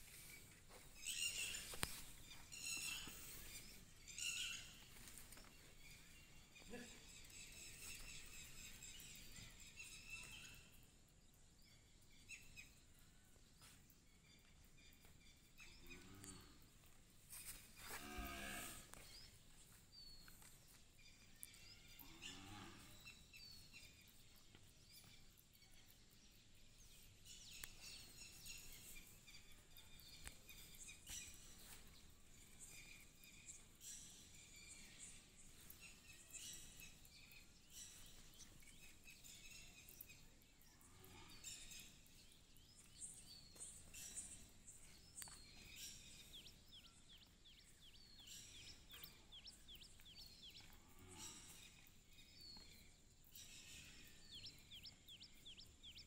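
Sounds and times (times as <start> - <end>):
faint bird chirps: 0.0 - 20.4
cow mooing: 18.0 - 18.9.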